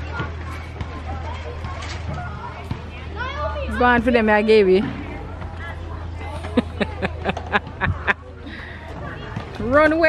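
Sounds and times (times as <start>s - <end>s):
distant voices at play: 0.0s - 10.0s.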